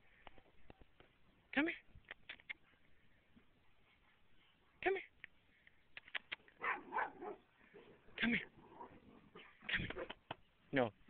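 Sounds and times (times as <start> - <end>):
sharp clicks: 5.2 - 6.6
dog barking and yipping: 6.6 - 8.0.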